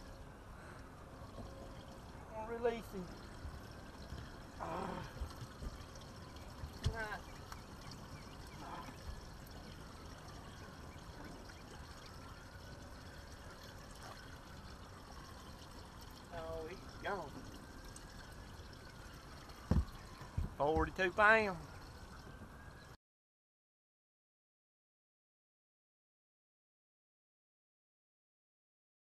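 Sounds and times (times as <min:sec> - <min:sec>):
water trickling and pouring: 0:00.0 - 0:23.0.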